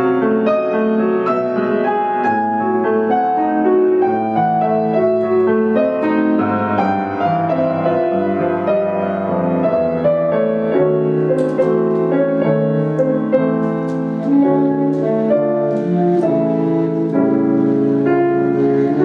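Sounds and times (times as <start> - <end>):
grand piano playing chords: 0.0 - 19.0
baritone saxophone: 14.2 - 19.0.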